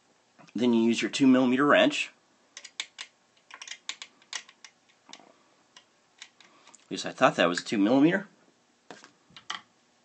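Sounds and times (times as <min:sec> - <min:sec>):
hex key clicking on metal screws: 0:02.6 - 0:04.8.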